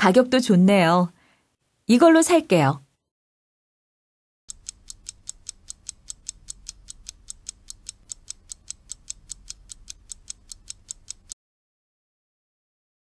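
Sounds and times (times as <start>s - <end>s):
rapid clock-like ticking: 4.5s - 11.4s.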